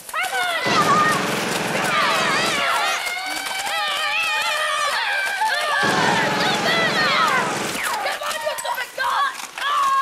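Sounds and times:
children shouting and yelling: 0:00.0 - 0:10.0.

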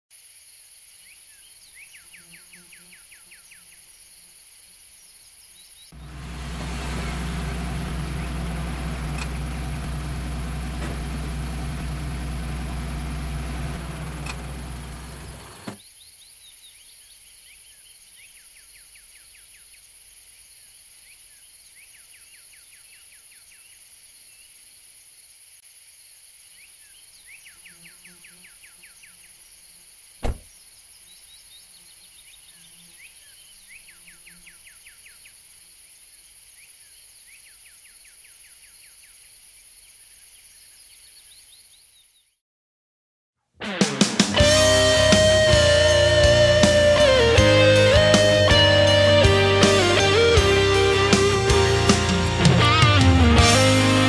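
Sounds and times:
low engine rumble: 0:06.0 - 0:15.8
click: 0:14.2 - 0:14.4.

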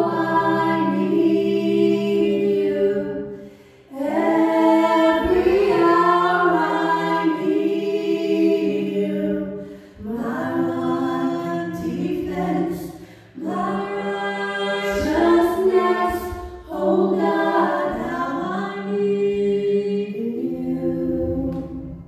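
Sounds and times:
women singing worship song: 0:00.0 - 0:22.0.

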